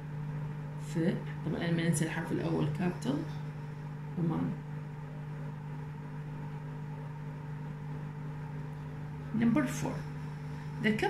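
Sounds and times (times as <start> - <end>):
low droning hum: 0.0 - 11.0.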